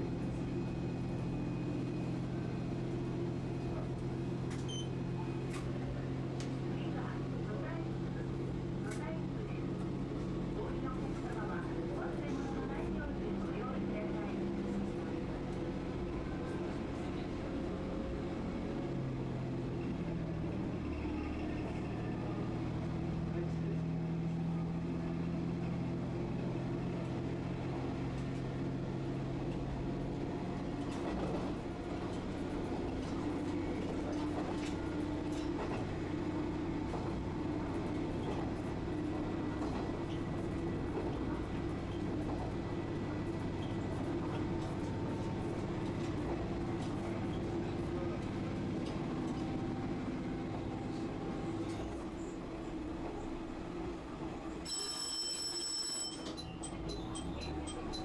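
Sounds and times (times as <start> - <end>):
train wheels on track: 0.0 - 58.0.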